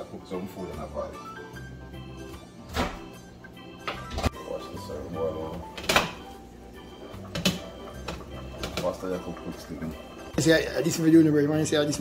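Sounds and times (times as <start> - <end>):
background music: 0.0 - 12.0
microwave door clacking: 5.7 - 6.3.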